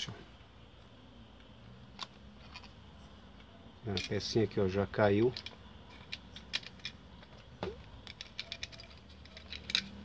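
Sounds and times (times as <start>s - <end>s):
plastic parts clicking: 5.3s - 10.0s.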